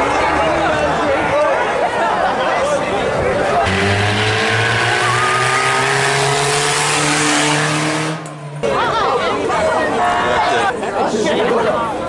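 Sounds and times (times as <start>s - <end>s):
vehicle engine revving: 3.6s - 9.0s.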